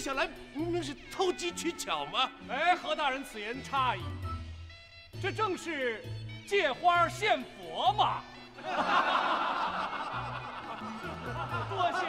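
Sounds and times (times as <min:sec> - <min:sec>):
background music with low notes: 0:00.0 - 0:12.0
men laughing: 0:08.6 - 0:12.0.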